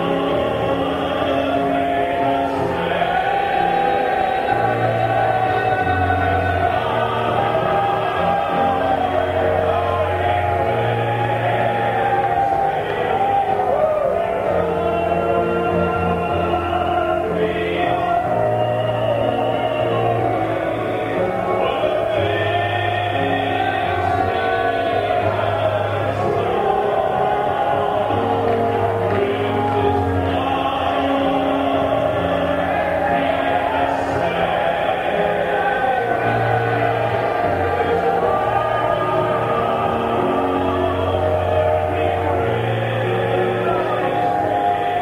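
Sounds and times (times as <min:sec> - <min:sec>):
gospel choir singing: 0:00.0 - 0:45.0
keyboard accompaniment: 0:00.0 - 0:45.0.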